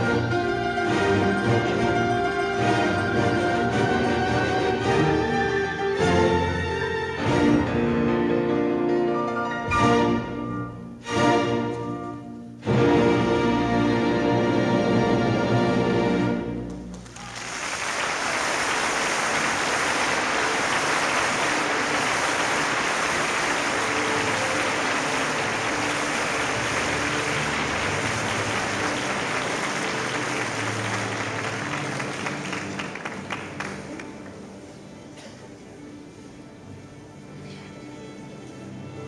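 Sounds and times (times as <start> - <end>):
audience applauding: 16.6 - 34.5.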